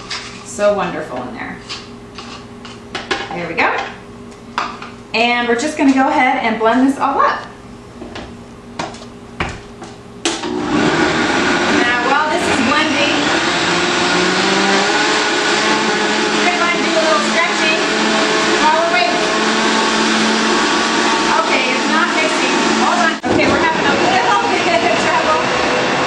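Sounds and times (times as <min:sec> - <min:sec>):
blender motor churning: 0:10.3 - 0:26.0.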